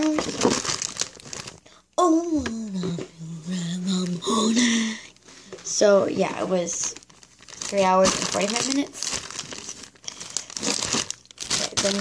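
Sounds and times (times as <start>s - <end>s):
plastic bag crinkling: 0.0s - 1.7s, 3.9s - 12.0s.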